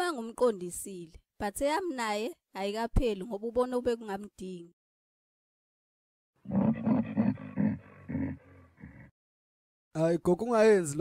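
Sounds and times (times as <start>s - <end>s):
cartoon creature growling: 6.4s - 9.1s.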